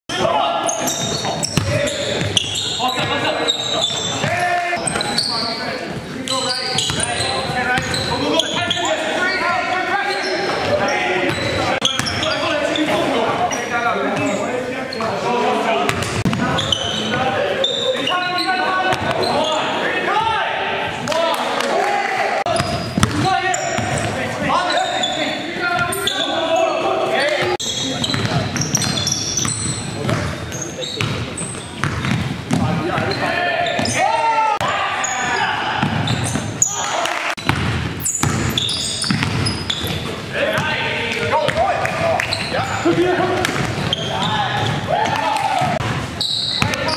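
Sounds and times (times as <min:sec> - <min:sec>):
sneakers squeaking: 0:00.1 - 0:21.0, 0:22.5 - 0:46.9
players shouting and chatting: 0:00.1 - 0:46.9
basketball bouncing on wooden floor: 0:22.6 - 0:24.1, 0:28.0 - 0:30.4, 0:31.0 - 0:33.1, 0:37.4 - 0:40.0, 0:42.9 - 0:44.8.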